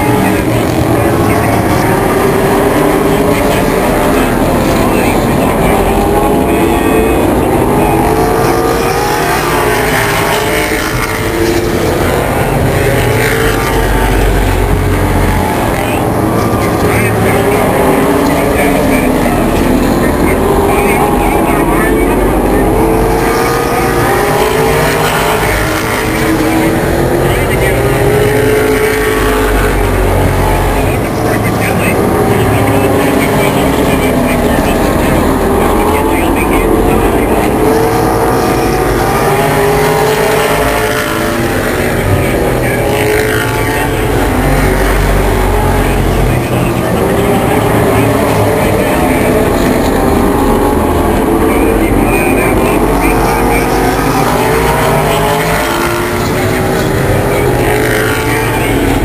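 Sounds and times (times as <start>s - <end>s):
racing car engines roaring: 0.0s - 59.0s.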